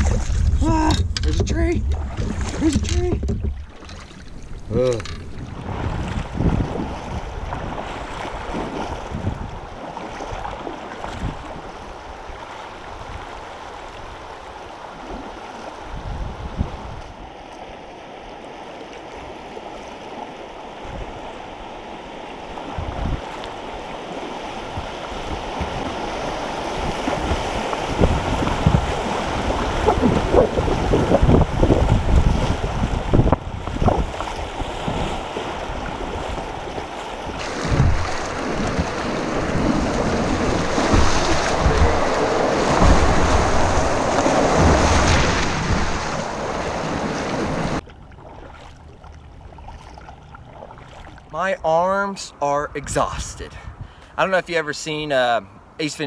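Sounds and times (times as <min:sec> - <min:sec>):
wind buffeting microphone: 0:00.0 - 0:14.3, 0:15.8 - 0:17.3, 0:22.6 - 0:47.8, 0:53.5 - 0:54.2
creek water rushing and splashing: 0:00.0 - 0:55.8
breaking waves hissing rush: 0:37.4 - 0:47.8.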